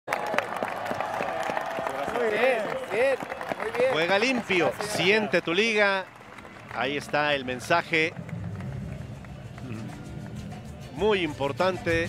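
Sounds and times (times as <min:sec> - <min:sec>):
stadium crowd applauding: 0:00.1 - 0:12.0.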